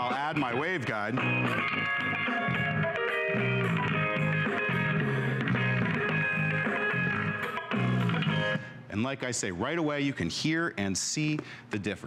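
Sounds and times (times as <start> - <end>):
guitar music with pulsing bass: 0.0 - 8.7.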